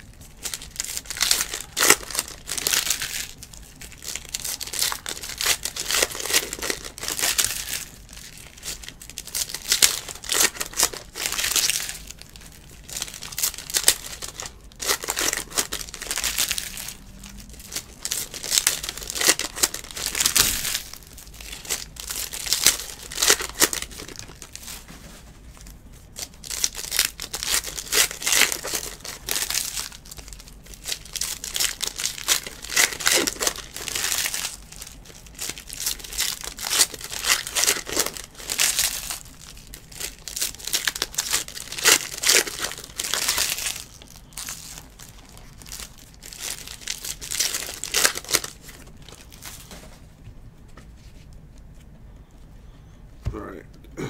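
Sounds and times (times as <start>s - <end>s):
foil wrappers crinkling and tearing: 0.0s - 50.0s.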